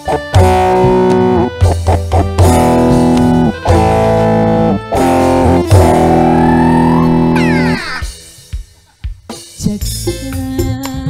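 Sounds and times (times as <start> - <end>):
organ band music: 0.0 - 7.7.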